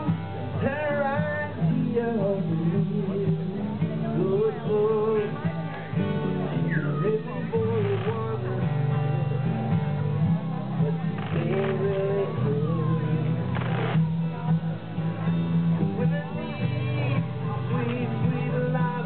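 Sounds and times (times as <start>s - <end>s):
acoustic guitars strummed: 0.0s - 19.0s
electric bass guitar: 0.0s - 19.0s.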